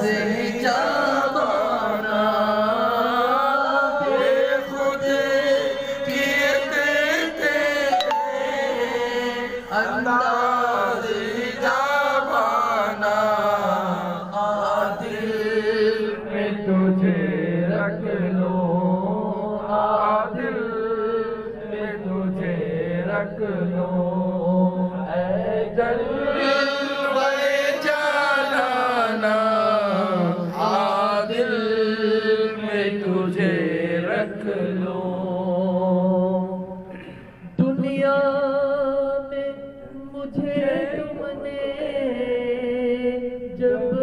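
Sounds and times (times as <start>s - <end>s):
man chanting into a microphone: 0.0s - 7.9s, 9.5s - 44.0s.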